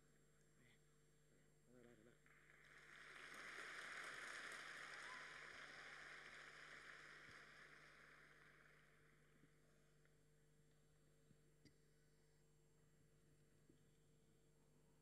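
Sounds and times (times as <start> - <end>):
faint audience applause: 2.0 - 10.1.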